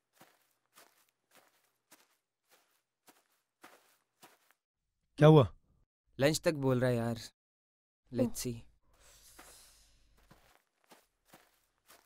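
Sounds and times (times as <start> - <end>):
faint footsteps: 0.0 - 4.6, 9.4 - 12.0.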